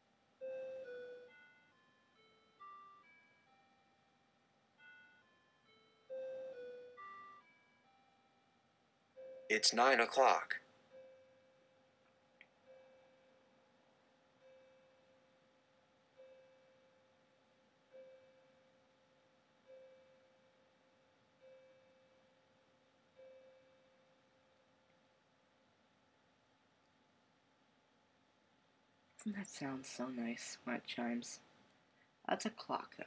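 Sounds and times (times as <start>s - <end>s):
clock chiming: 0.4s - 4.1s, 4.8s - 8.6s, 9.2s - 24.6s.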